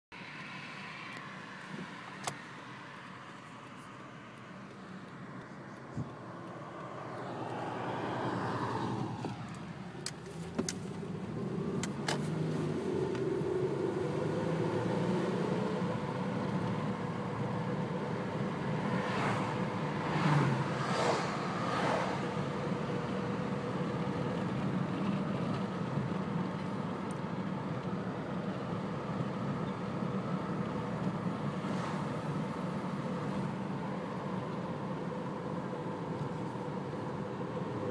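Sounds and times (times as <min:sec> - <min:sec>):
car engine and road noise: 0:00.1 - 0:37.9.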